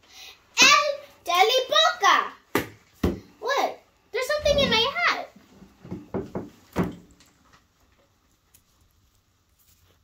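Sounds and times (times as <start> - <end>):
young girl speaking: 0.6 - 2.5, 3.4 - 5.4.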